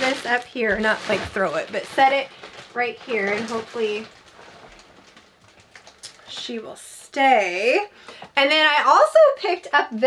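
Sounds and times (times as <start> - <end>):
rug rustling: 0.0 - 6.0.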